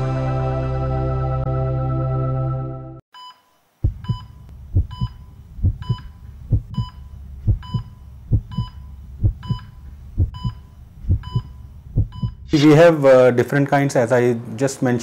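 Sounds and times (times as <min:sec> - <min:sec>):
heart monitor beeps: 0:03.2 - 0:12.5
heartbeat thumps: 0:03.8 - 0:12.6.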